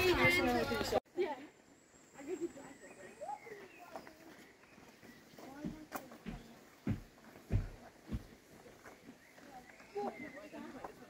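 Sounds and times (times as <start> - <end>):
soft low thumps: 5.5 - 8.5.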